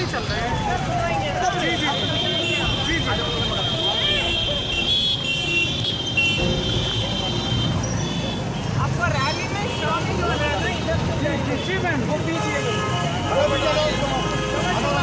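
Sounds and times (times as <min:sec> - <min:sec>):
motorcycle engines rumbling: 0:00.0 - 0:15.0.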